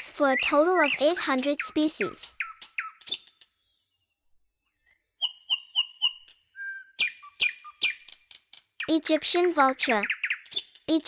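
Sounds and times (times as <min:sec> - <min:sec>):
bird chirps and whistles: 0:00.3 - 0:03.8, 0:04.7 - 0:08.2, 0:10.0 - 0:10.8.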